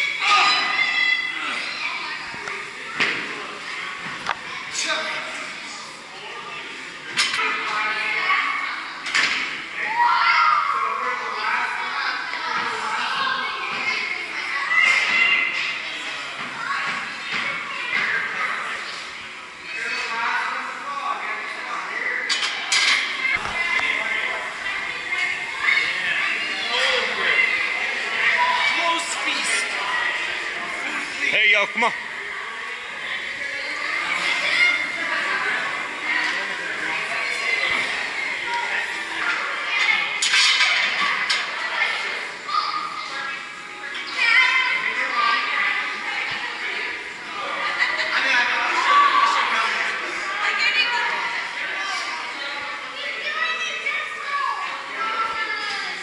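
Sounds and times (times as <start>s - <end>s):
indistinct voices in echoing room: 0.0s - 56.0s.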